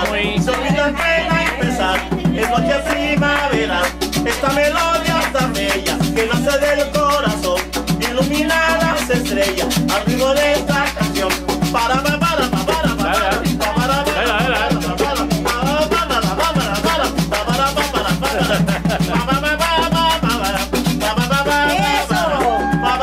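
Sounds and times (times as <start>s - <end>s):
live band playing dance music: 0.0s - 5.0s, 9.4s - 23.0s
shaken percussion rhythm: 0.0s - 23.0s.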